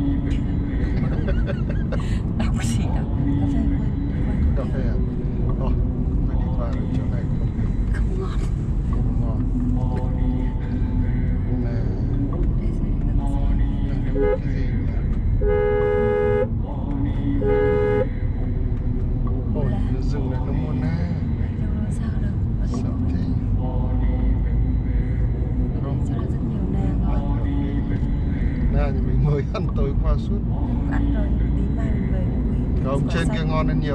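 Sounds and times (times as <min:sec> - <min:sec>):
road and engine rumble: 0:00.0 - 0:33.9
car horn: 0:14.0 - 0:14.8, 0:15.4 - 0:16.6, 0:17.4 - 0:18.2.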